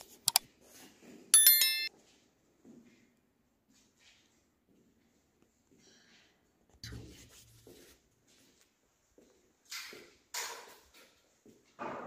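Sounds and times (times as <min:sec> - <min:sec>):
bell-like ringing tones: 0:01.4 - 0:01.9.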